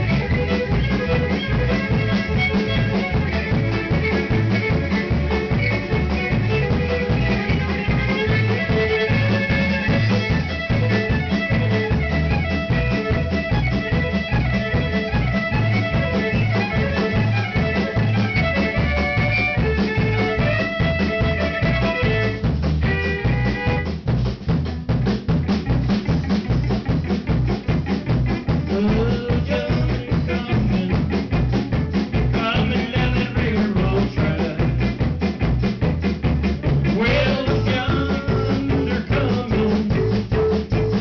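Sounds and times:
fiddle melody: 0.0s - 24.6s, 25.2s - 41.0s
drum kit beat: 0.0s - 41.0s
electric guitar: 0.0s - 41.0s.

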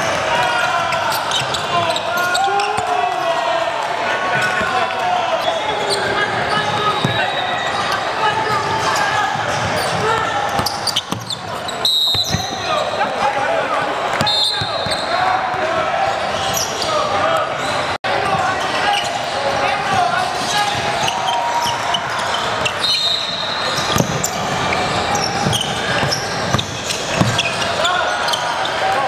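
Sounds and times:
voices of players and spectators: 0.0s - 29.0s.

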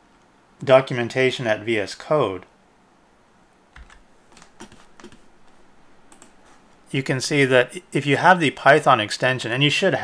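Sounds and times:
keyboard key clicks: 3.8s - 5.2s.

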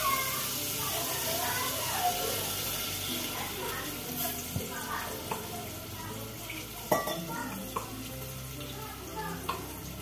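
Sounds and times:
paste sizzling in hot oil: 0.0s - 10.0s
ladle clinking against pot: 6.9s - 7.9s.

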